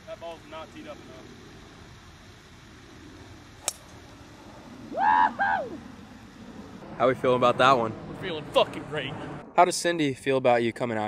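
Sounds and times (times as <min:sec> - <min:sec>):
golf club striking ball: 0:03.6 - 0:04.0.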